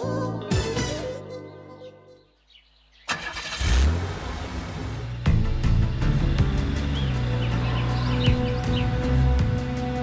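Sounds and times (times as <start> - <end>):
car engine revving: 3.1 - 10.0.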